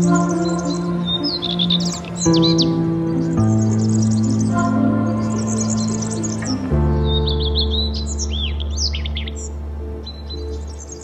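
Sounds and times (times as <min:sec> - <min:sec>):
background music: 0:00.0 - 0:11.0
small birds chirping: 0:00.0 - 0:11.0.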